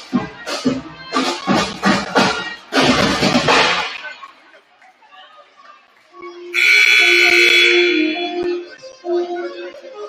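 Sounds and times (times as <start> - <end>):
faint background music: 0.0 - 10.0
scoreboard horn: 6.5 - 8.6.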